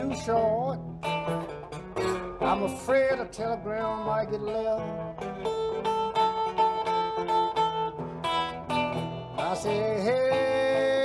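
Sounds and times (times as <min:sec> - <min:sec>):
fingerpicked electric guitar blues: 0:00.0 - 0:11.0.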